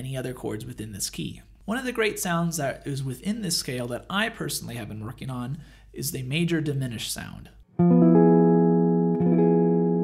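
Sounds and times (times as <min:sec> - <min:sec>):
electric guitar chord ringing: 0:07.8 - 0:10.0.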